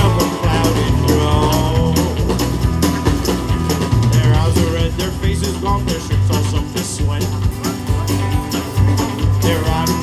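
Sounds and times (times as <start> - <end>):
acoustic guitar: 0.0 - 10.0
bass: 0.0 - 10.0
drums: 0.0 - 10.0.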